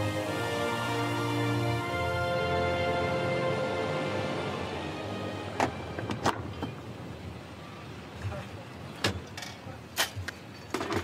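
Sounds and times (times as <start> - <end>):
background music: 0.0 - 6.9.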